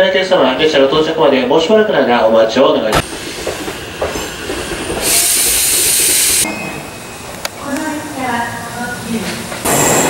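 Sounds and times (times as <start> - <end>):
platform and train noise: 0.0 - 10.0
compressed air hissing: 3.0 - 6.5.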